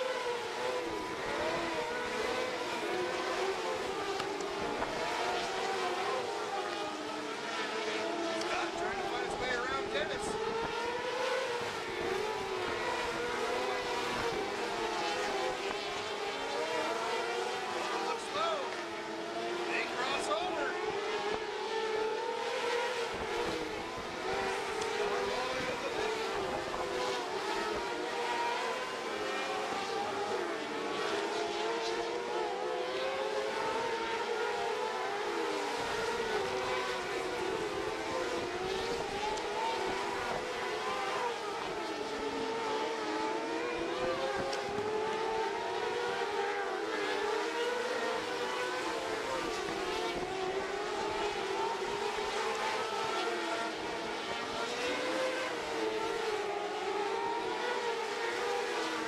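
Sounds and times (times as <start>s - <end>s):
racing car engines: 0.0s - 59.0s.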